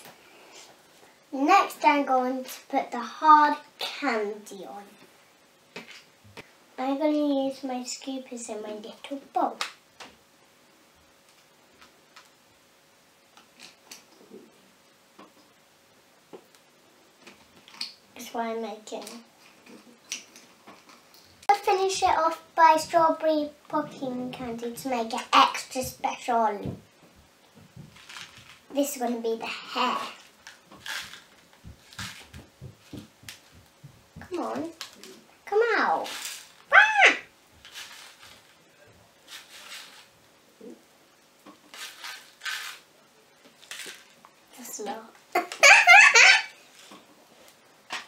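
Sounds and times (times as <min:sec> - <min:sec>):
candy rattling out of packet: 0:30.4 - 0:31.3, 0:37.6 - 0:38.5, 0:41.7 - 0:42.8.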